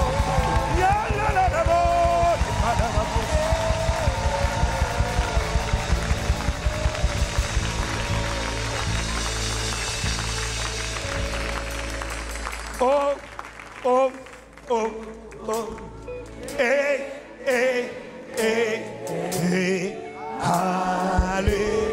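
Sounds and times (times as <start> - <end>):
drum beat: 0.0 - 12.0
electric guitar: 0.0 - 19.0
congregation shouting praise: 0.0 - 21.9.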